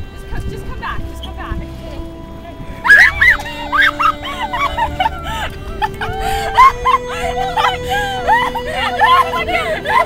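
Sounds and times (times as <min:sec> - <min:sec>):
slow background music: 0:00.0 - 0:10.0
girl squealing and giggling: 0:02.8 - 0:10.0.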